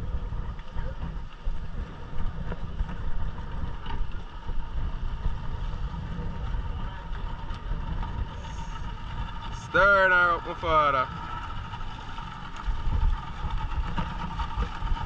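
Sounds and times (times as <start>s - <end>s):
outboard motor rumbling: 0.0s - 15.0s
wind buffeting microphone: 0.0s - 15.0s.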